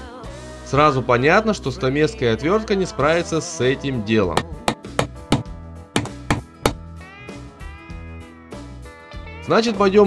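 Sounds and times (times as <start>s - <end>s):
screwdriver knocking on steel rim: 4.4s - 6.8s.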